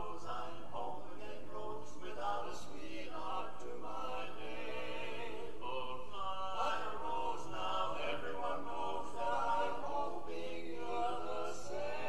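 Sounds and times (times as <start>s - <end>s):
men singing in close harmony: 0.0s - 12.0s.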